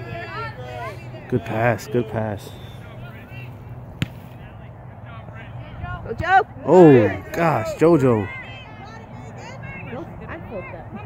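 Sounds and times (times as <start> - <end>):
faint distant voices: 0.0 - 11.0
ball kicked with a thump: 4.0 - 4.3.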